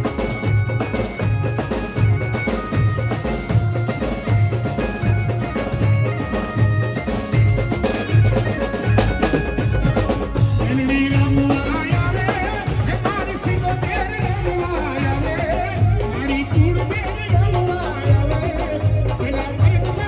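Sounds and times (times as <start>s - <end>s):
heavy drum beat: 0.0s - 20.0s
keyboard melody of long notes: 0.0s - 20.0s.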